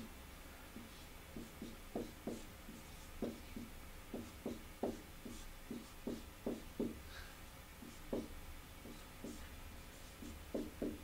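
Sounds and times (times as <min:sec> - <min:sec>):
marker writing on whiteboard: 0:00.7 - 0:07.0, 0:07.8 - 0:11.0.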